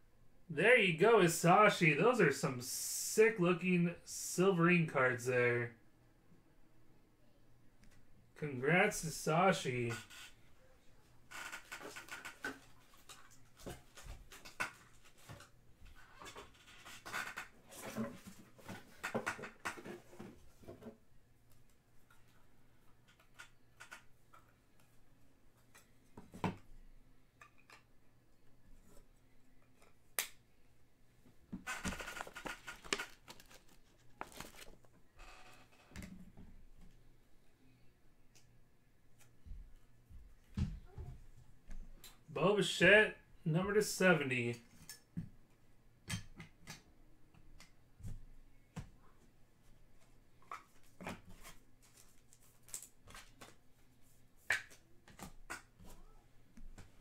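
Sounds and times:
packaging and cards rustling: 0:31.9 - 0:35.0.

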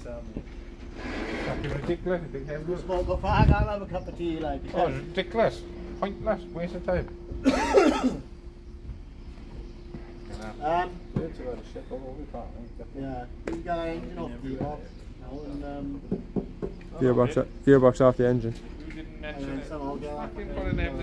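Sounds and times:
men talking and laughing: 0:01.4 - 0:21.0.

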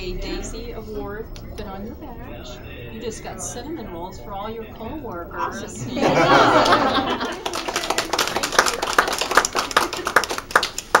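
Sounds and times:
hands clapping steadily: 0:06.4 - 0:11.0
fainter hand claps: 0:06.6 - 0:11.0.

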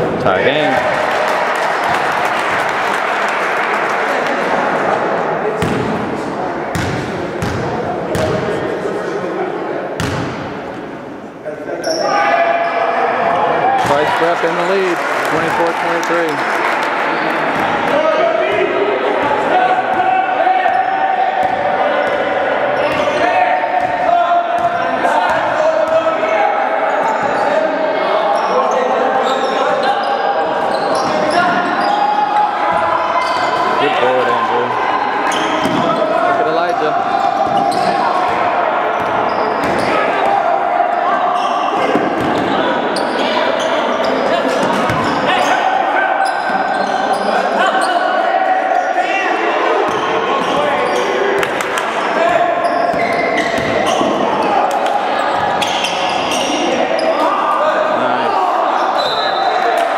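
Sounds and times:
shouting and chatter: 0:00.0 - 0:59.9.

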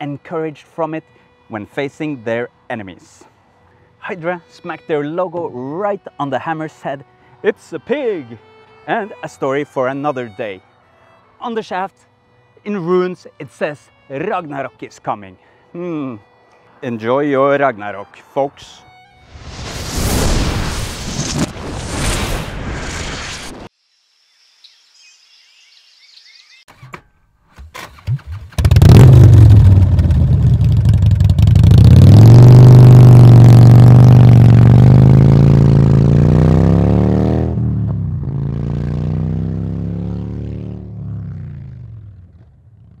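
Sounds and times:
engine revving: 0:28.5 - 0:43.0.

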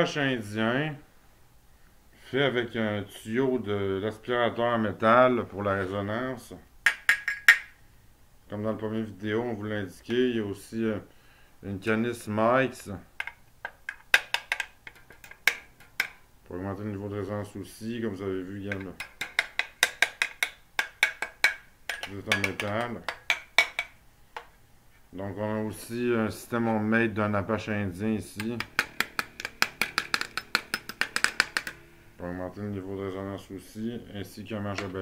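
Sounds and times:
sharp taps on metal tube: 0:06.8 - 0:07.7, 0:18.7 - 0:24.5
sharp metal clicks and taps: 0:13.2 - 0:16.2, 0:18.7 - 0:24.5, 0:28.4 - 0:31.8.

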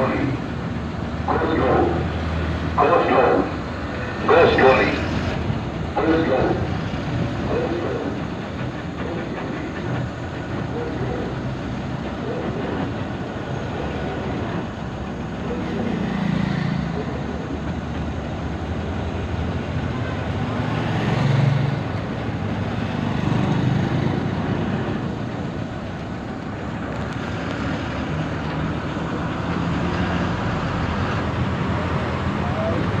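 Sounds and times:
vehicle road and engine noise: 0:00.0 - 0:33.0.

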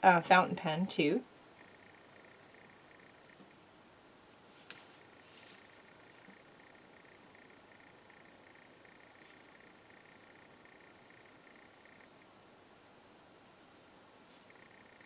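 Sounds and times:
pulsing high-pitched hum: 0:01.5 - 0:03.6, 0:05.0 - 0:12.4, 0:14.4 - 0:15.0.

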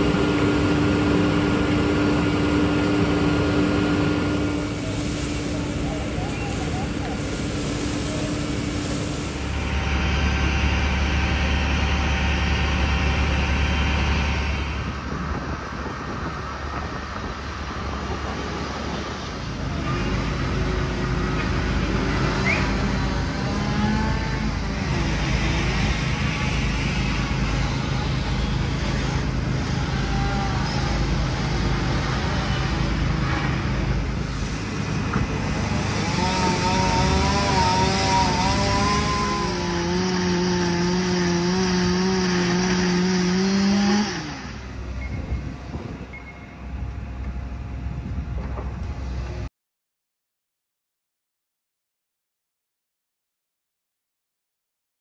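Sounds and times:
fire engines running: 0:00.0 - 0:49.5.

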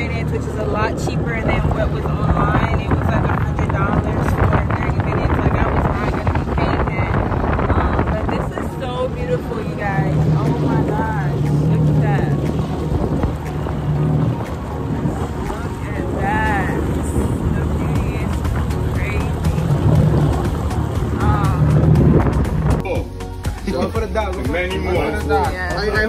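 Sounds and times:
wind on microphone: 0:00.0 - 0:23.2
jet ski engine running: 0:00.0 - 0:26.0.

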